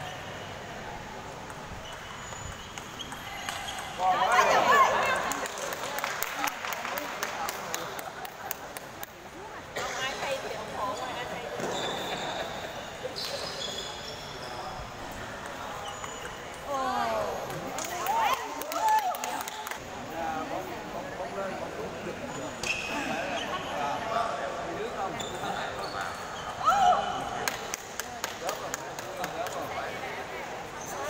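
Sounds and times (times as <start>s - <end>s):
chatter echoing in a hall: 0.0s - 31.0s.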